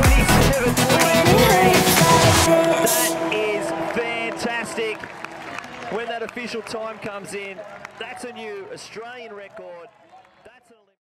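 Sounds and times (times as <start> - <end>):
crowd: 0.0 - 11.0.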